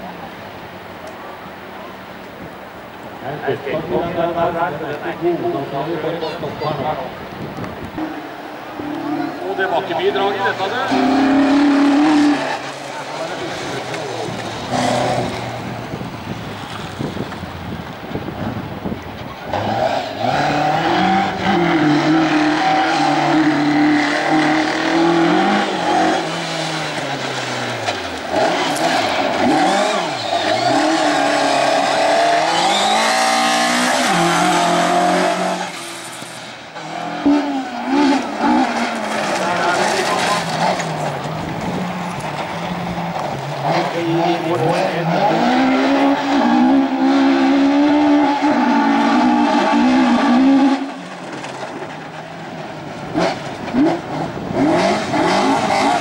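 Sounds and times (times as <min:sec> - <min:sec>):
rally car engines revving: 0:00.0 - 0:56.0
tyres sliding on gravel: 0:08.1 - 0:18.0, 0:22.3 - 0:46.2.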